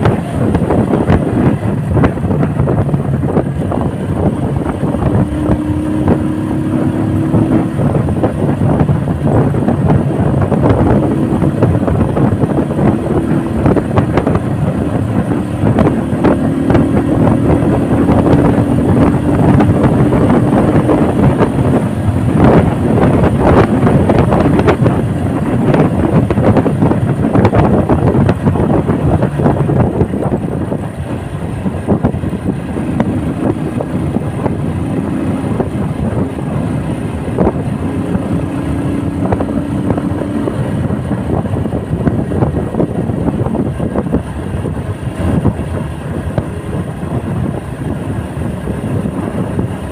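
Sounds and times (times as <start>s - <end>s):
motorcycle engine running: 0.0s - 49.9s
wind rushing over microphone: 0.0s - 49.9s.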